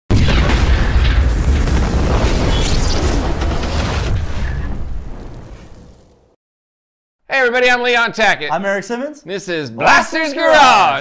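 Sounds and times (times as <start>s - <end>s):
explosion boom and rumble: 0.1s - 6.4s.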